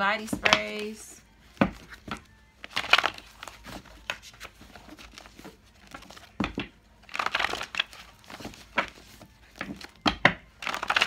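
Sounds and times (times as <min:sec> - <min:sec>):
paper crinkling and rustling: 0:00.4 - 0:11.0.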